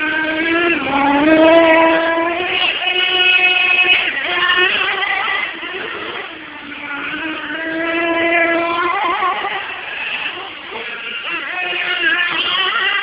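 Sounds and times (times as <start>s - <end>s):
rc car motors whining: 0.0s - 13.0s.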